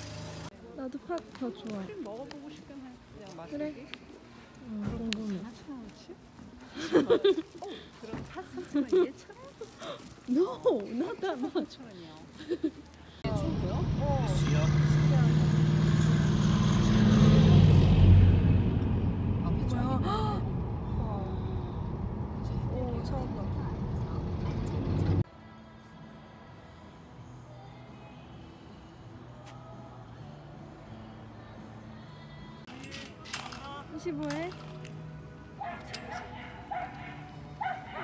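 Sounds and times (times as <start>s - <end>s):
tracked vehicle engine drone: 0.0s - 0.6s, 13.2s - 25.3s
small dog barking in high yips: 35.6s - 38.0s.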